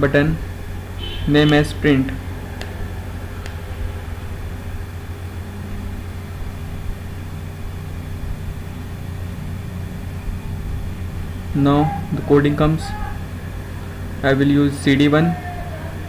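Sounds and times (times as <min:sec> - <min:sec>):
steady low hum with hiss: 0:00.0 - 0:16.0.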